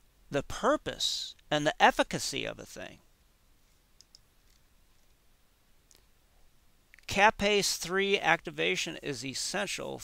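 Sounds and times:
faint short clicks: 4.0s - 4.6s.

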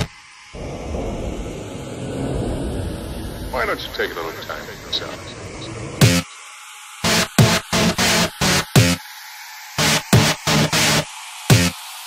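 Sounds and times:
rumbling noise bed: 0.0s - 8.0s
rising synth sweep: 0.0s - 9.0s.

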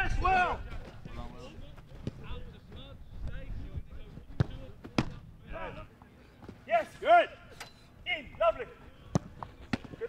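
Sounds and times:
football thuds: 4.2s - 5.3s.

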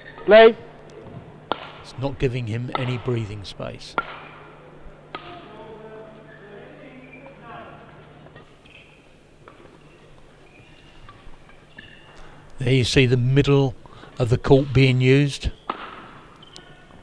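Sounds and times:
racket hitting shuttlecock: 1.5s - 1.8s, 4.0s - 4.4s, 15.7s - 16.2s.

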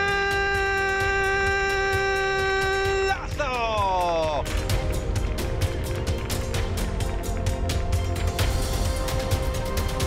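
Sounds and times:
commentator's drawn-out goal cry: 0.0s - 4.4s
background music with steady beat: 0.0s - 10.0s.

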